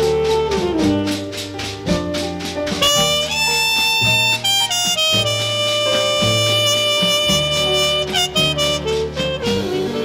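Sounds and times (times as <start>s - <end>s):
jazz horn playing: 0.0s - 10.0s
walking bass: 0.0s - 10.0s.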